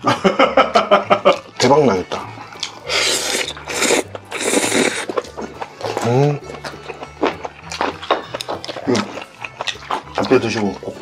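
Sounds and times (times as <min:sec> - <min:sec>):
chewing and mouth smacking: 0:01.0 - 0:11.0.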